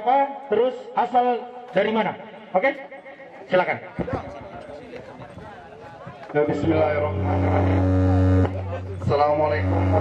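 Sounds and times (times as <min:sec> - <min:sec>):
electrical buzz from pa system: 0:06.7 - 0:10.0.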